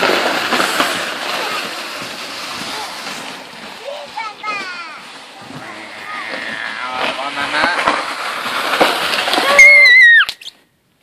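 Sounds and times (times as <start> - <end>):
shovel scraping over snow and ice: 0.0 - 10.0.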